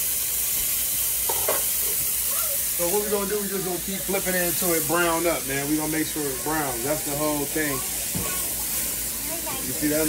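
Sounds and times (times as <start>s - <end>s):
steaks sizzling in a skillet: 0.0s - 10.0s.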